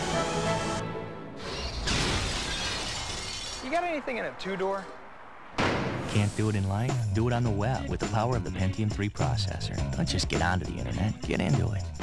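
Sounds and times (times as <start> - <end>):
debris clattering: 1.5 - 4.1
glass shattering: 1.6 - 3.8.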